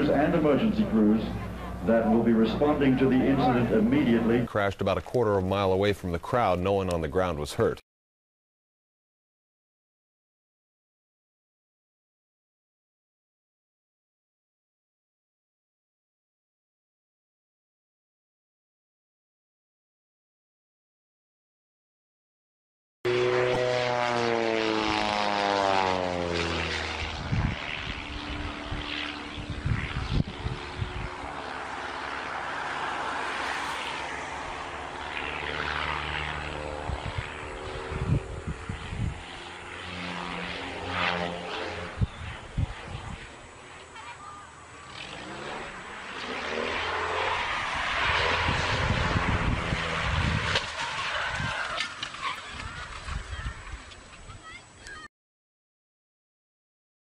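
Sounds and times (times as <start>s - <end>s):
propeller aircraft engine drone: 0.0s - 7.8s, 23.1s - 55.1s.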